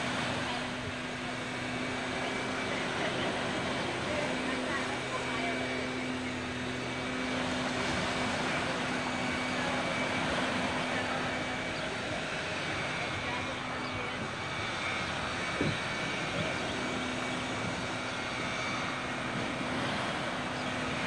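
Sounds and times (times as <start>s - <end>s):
small waves washing on sand: 0.0s - 13.3s, 14.7s - 21.0s
distant engine droning: 0.0s - 21.0s
faint voices: 0.0s - 21.0s.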